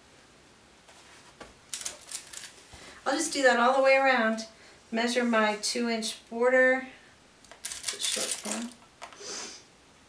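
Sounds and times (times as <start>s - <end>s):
metal pins clicking and rattling: 1.7s - 2.5s.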